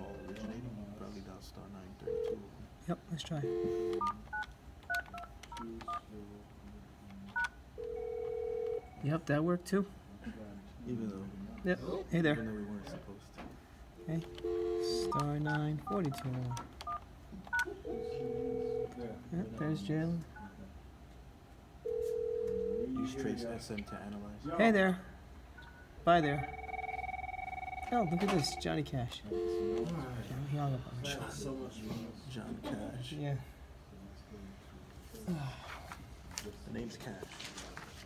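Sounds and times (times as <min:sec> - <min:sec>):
steady dial tone: 0:03.4 - 0:06.0, 0:07.4 - 0:09.0, 0:14.0 - 0:15.3, 0:16.0 - 0:19.2, 0:21.9 - 0:23.0, 0:26.4 - 0:28.6, 0:29.3 - 0:30.1
steady telephone tone: 0:07.8 - 0:09.0, 0:17.9 - 0:19.0, 0:26.4 - 0:28.7, 0:29.3 - 0:29.9.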